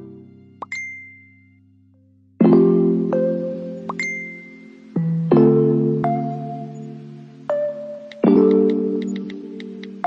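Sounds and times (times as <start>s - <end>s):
soft keyboard notes: 2.4s - 10.0s.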